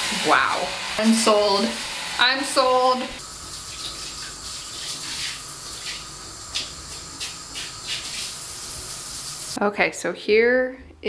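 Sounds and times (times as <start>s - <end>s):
shower spraying on tiles: 0.0s - 9.6s.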